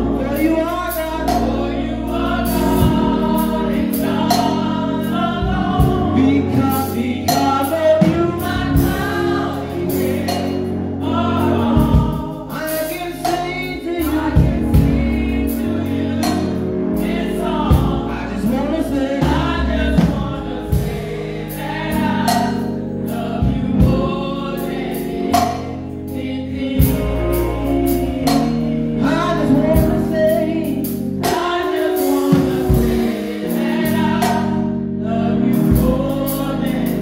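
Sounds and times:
man singing lead: 0:00.0 - 0:21.0, 0:26.4 - 0:37.0
instrumental chords: 0:00.0 - 0:37.0.

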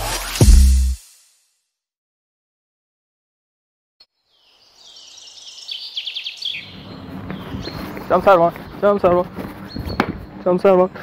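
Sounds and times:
birds chirping and trilling: 0:04.1 - 0:11.0.

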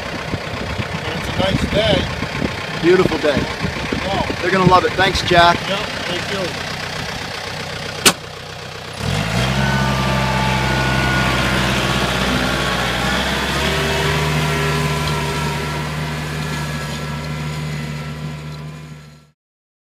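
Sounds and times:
tractor engine running under load: 0:00.0 - 0:19.3.

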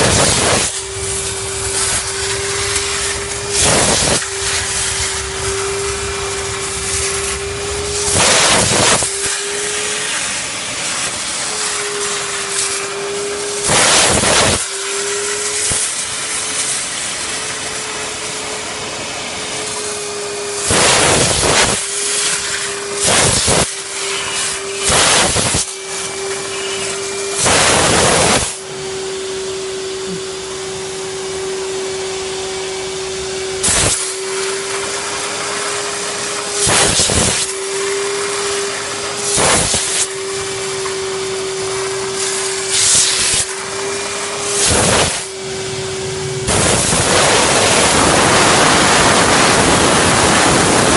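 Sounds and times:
short loud steam hisses: 0:00.0 - 0:09.5, 0:33.6 - 0:34.2, 0:36.6 - 0:37.5
vacuum cleaner whining: 0:00.0 - 0:50.9.

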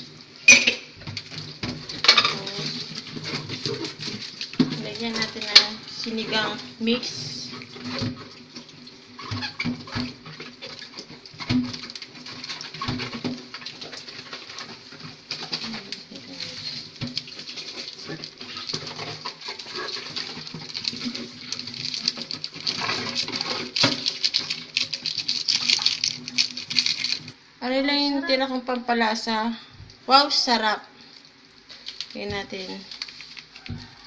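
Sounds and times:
broth simmering: 0:00.0 - 0:34.0.

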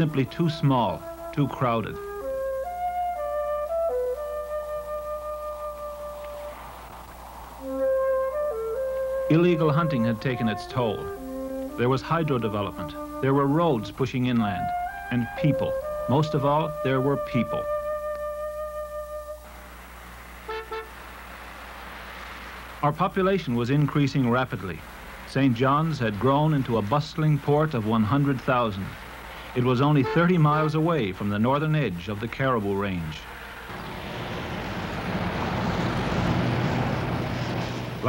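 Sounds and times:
flute note: 0:00.0 - 0:06.8, 0:07.6 - 0:19.6, 0:20.5 - 0:21.0, 0:30.0 - 0:30.8
city street traffic hum: 0:00.0 - 0:38.0
car horn toots: 0:20.5 - 0:21.0, 0:30.0 - 0:30.7
car driving by: 0:33.3 - 0:38.0.

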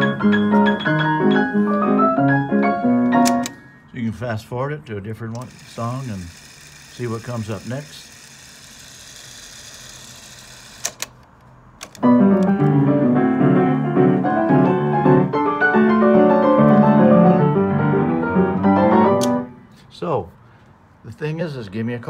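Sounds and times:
player piano playing: 0:00.0 - 0:03.8, 0:12.0 - 0:19.6
mechanical clicks: 0:03.1 - 0:03.6, 0:05.3 - 0:12.6
cassette winding whir: 0:05.3 - 0:12.6.

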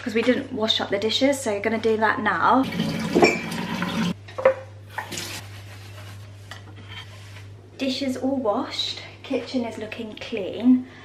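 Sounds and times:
tap water rushing: 0:02.6 - 0:05.4.

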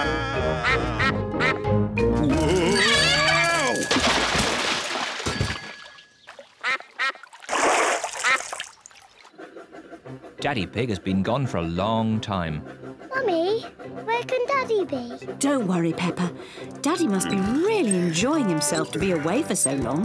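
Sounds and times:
cartoon music with falling glide: 0:00.0 - 0:04.0
cartoon ducks quacking: 0:00.5 - 0:01.6.

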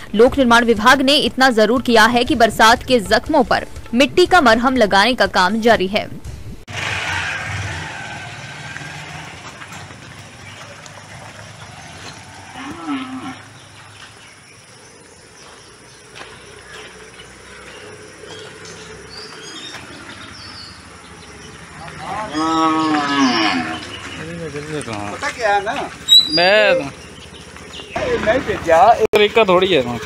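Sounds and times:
cow mooing: 0:07.3 - 0:13.8, 0:16.7 - 0:24.4.

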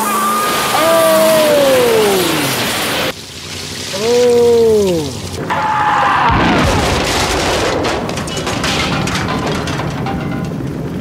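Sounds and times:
fire crackling: 0:00.1 - 0:11.0
explosion deep rumble: 0:06.2 - 0:11.0.

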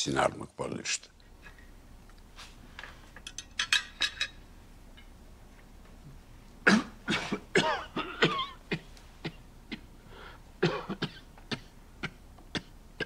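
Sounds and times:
man coughing: 0:06.6 - 0:09.9, 0:10.6 - 0:12.8.

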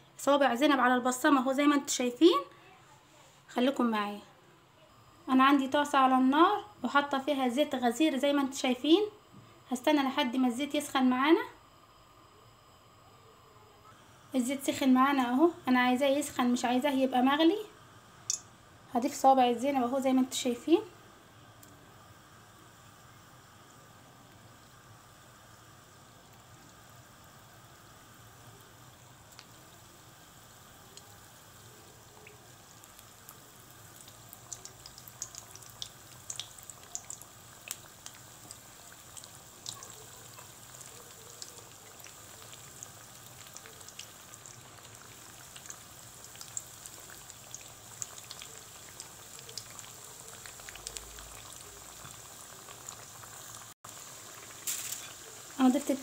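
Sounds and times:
dough sizzling in hot oil: 0:13.8 - 0:56.0
oil crackling and popping: 0:18.2 - 0:18.5, 0:23.0 - 0:56.0.

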